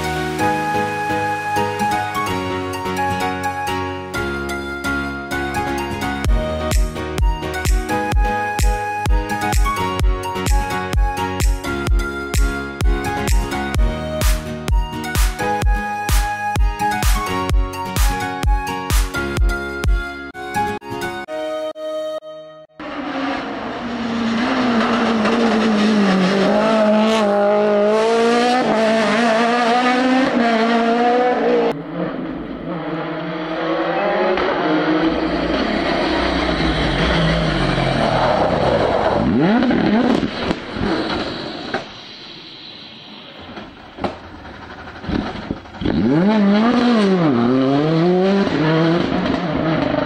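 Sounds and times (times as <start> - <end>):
rally car engines revving: 22.8 - 41.9, 43.4 - 50.0
car passing by: 22.8 - 44.3.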